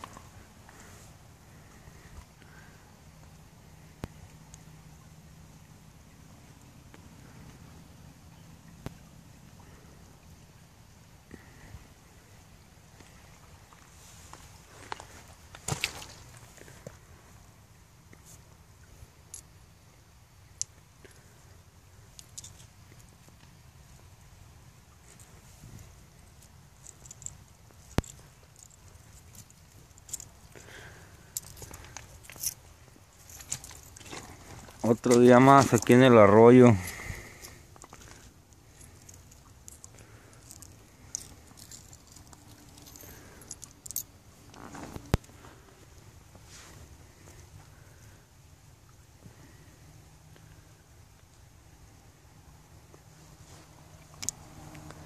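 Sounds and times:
hand scraping soil and stone: 0:25.1 - 0:47.4.

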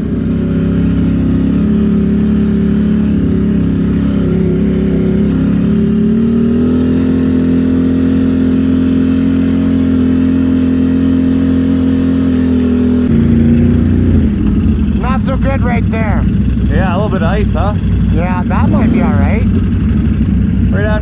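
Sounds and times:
atv engine running: 0:00.0 - 0:21.0.

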